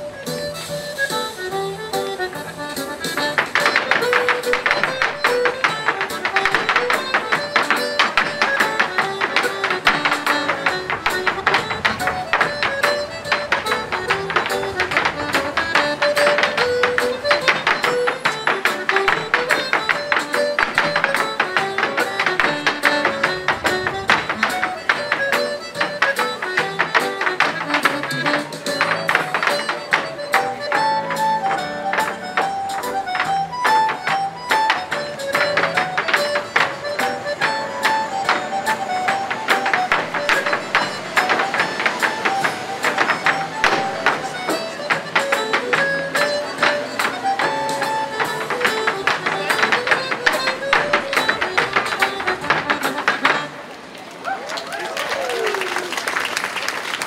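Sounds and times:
dance shoes tapping on wood: 0:00.0 - 0:53.7.

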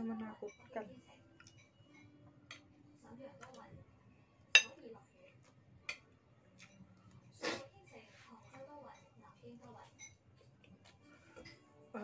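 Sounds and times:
metal spoon clinking on bowl: 0:04.5 - 0:04.8.

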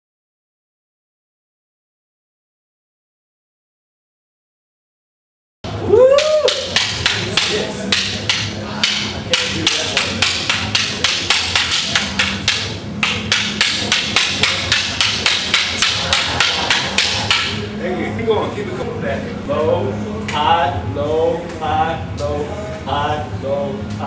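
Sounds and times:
wooden sticks clacking: 0:05.9 - 0:17.6.

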